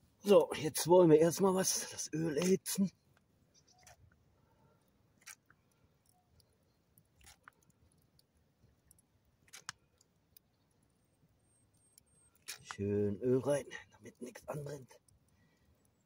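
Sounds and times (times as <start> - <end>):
campfire crackling: 0.0 - 16.0.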